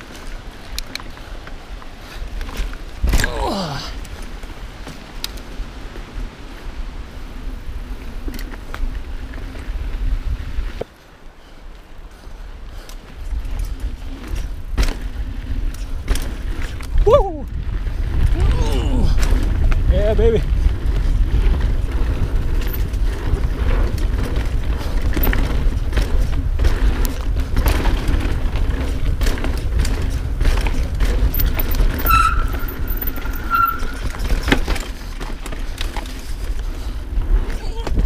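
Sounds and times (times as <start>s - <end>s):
bike clicking and rattling: 0.0s - 38.0s
wind and tyres rumbling: 0.0s - 38.0s
high squeaks: 31.8s - 34.2s.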